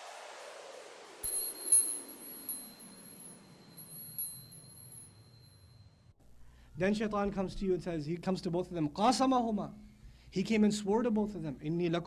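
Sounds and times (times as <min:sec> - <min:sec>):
held high tone: 0:01.2 - 0:05.5
high twinkling chimes: 0:01.2 - 0:05.7.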